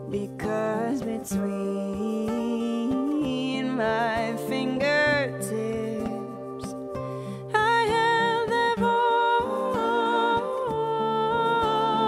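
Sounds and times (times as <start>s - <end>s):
strummed acoustic guitar: 0.0s - 12.0s
woman singing long notes: 7.6s - 12.0s.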